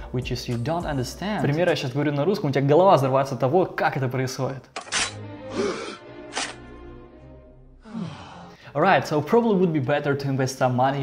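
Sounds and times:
man talking sing-song: 0:00.0 - 0:04.6.

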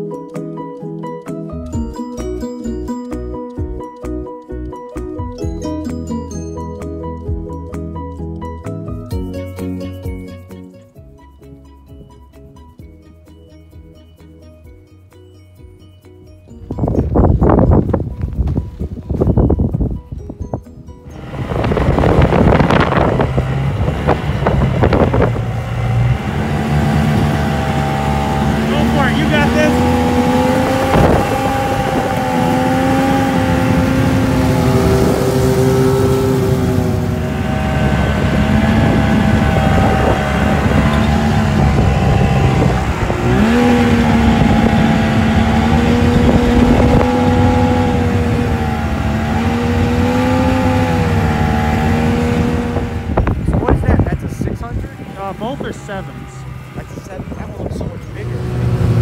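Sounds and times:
snowmobile engine running: 0:21.1 - 0:59.0.

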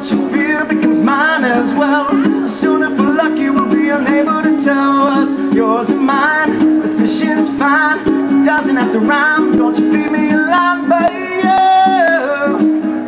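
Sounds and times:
man singing: 0:00.0 - 0:13.0
ukulele strumming chords: 0:00.0 - 0:13.0.

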